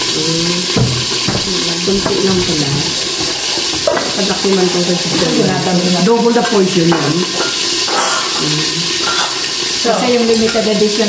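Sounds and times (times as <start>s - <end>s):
food sizzling in a pan: 0.0s - 11.0s.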